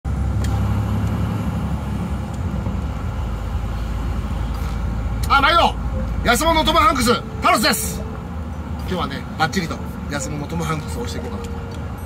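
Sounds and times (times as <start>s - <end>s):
truck engine low rumble: 0.0s - 12.0s.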